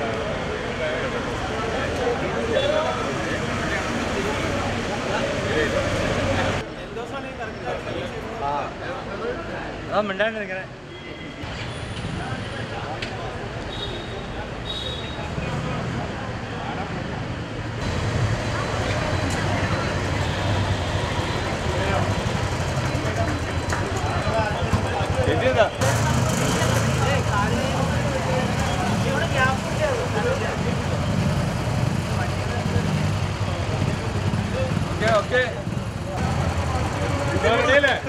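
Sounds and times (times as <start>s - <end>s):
motorcycle engines idling: 17.8s - 38.0s
people talking: 17.8s - 38.0s.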